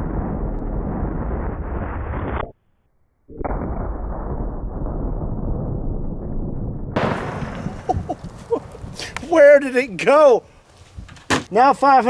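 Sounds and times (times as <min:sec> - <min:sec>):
slowed-down gunshot rumble: 0:00.0 - 0:02.4, 0:03.3 - 0:09.0
outdoor ambience: 0:00.0 - 0:12.0.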